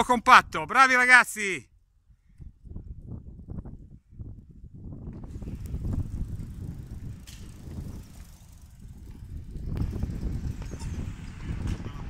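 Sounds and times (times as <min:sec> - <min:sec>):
bicycles rolling: 0:04.9 - 0:12.0
sharp bicycle clicks: 0:05.1 - 0:11.7.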